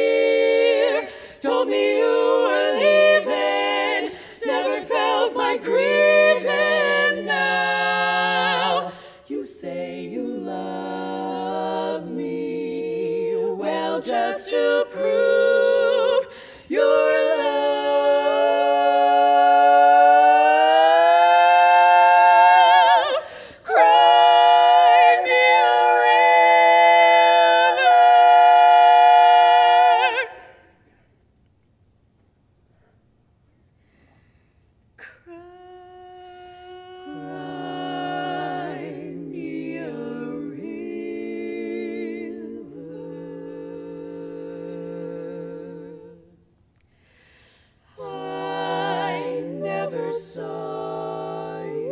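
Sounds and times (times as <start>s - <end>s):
women singing sustained chord: 0.0s - 30.9s, 35.2s - 51.9s.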